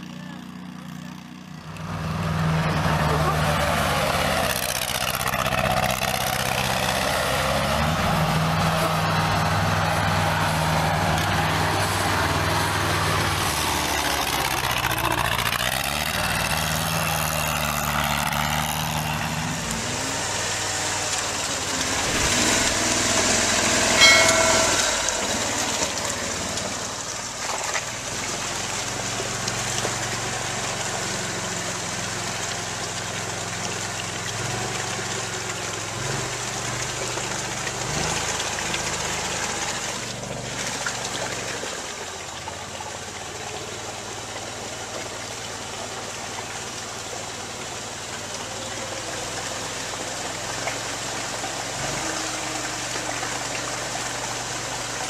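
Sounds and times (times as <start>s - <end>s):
tracked atv engine changing speed: 0.0s - 41.5s
atv engine churning through mud: 0.0s - 55.0s
brief high tone: 24.0s - 27.0s.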